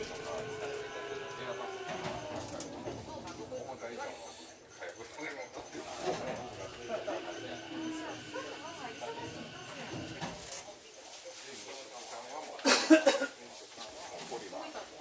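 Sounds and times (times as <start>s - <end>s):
train moving: 0.0s - 10.7s
people talking indistinctly: 0.0s - 11.0s.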